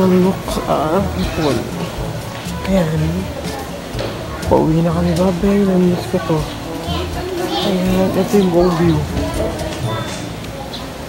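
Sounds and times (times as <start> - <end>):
adults and children talking: 0.0 - 11.0.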